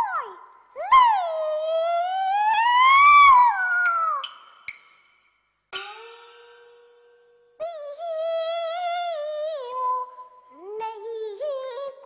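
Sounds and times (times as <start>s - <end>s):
child singing opera note: 0.0s - 4.3s, 7.6s - 12.0s
percussion clicks: 3.8s - 5.2s.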